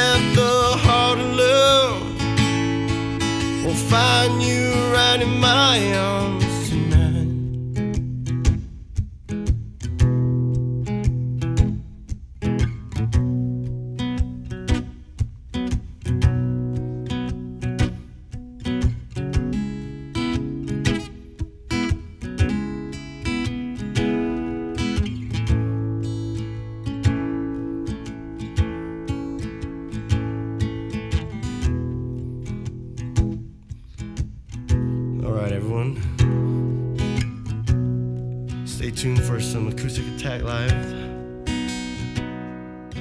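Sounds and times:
acoustic guitar playing: 0.0s - 43.0s.

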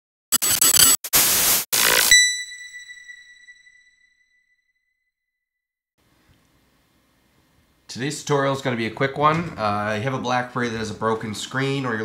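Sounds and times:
hissing static bursts: 0.3s - 2.2s
high bell-like ring: 2.1s - 4.2s.

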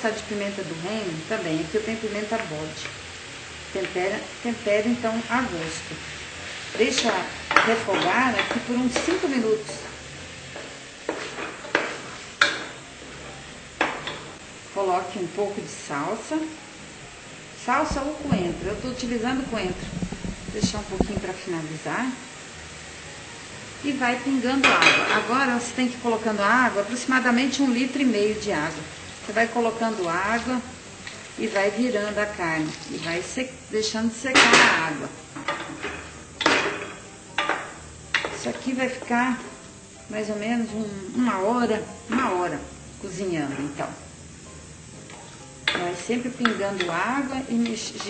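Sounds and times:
low sizzle: 0.0s - 48.0s
wooden spoon stirring in pot: 5.2s - 13.2s, 17.7s - 21.4s, 45.0s - 48.0s
wooden spoon scraping a pot: 17.9s - 21.4s.

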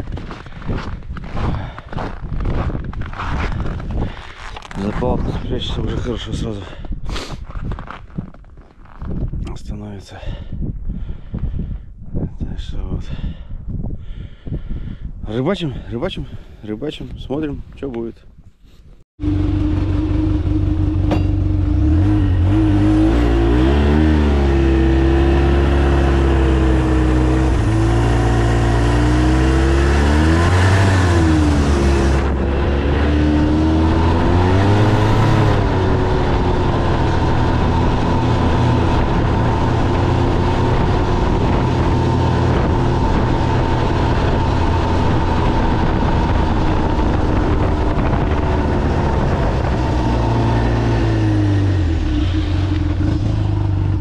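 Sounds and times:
snowmobile engine running: 19.2s - 54.0s.

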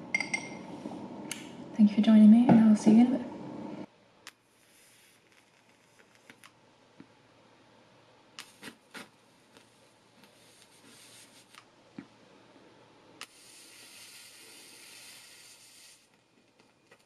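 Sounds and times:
lighter flame hissing: 4.5s - 6.5s, 8.4s - 11.6s, 13.2s - 16.2s.

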